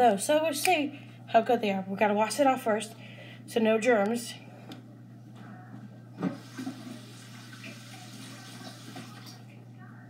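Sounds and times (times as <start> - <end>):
low steady hum: 0.0 - 10.0
water running from a tap: 6.3 - 9.4.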